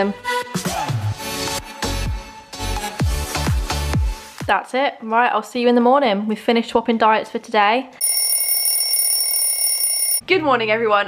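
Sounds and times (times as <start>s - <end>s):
bell alarm clock ringing: 8.0s - 10.2s.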